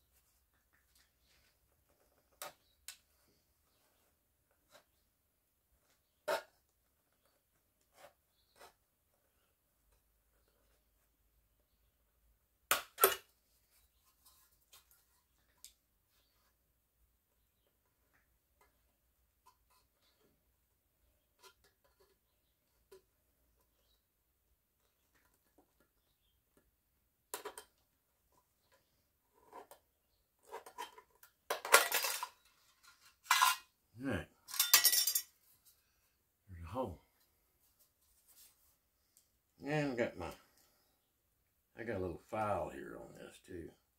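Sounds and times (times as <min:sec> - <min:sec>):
metallic clinks and rattles: 0:34.4 - 0:35.4.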